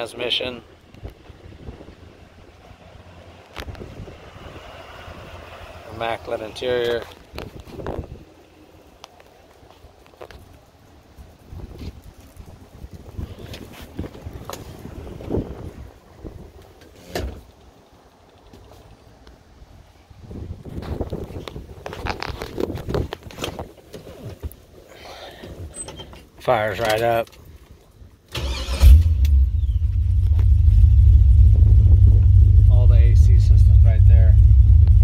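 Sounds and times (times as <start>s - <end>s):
low rumble: 28.8s - 35.0s.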